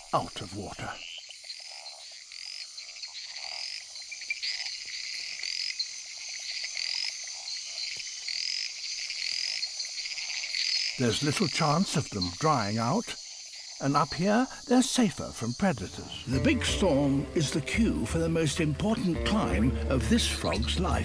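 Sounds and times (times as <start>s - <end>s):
frogs chirping: 0.0s - 21.0s.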